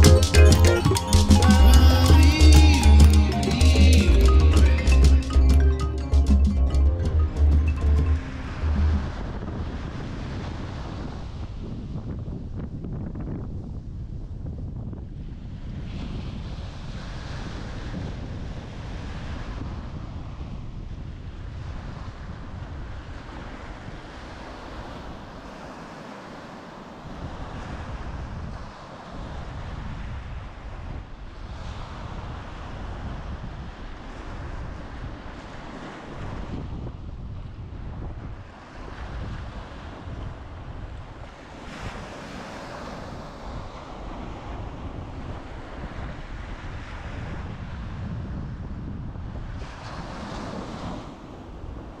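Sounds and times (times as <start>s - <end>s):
wind buffeting microphone: 9.0s - 25.1s, 27.1s - 52.0s
small waves breaking on beach: 9.2s - 12.0s, 15.2s - 52.0s.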